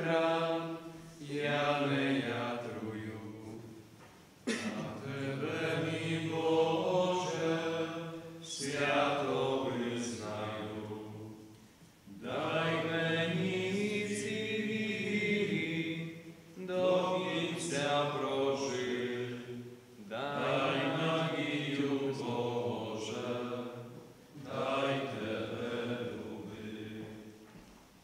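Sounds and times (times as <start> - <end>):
group singing slow hymn: 0.0 - 27.6.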